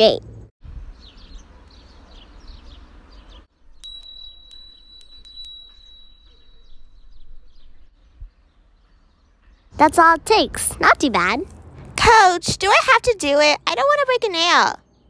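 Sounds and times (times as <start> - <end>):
birds chirping: 0.9 - 11.9
bright chime strikes: 3.8 - 7.7.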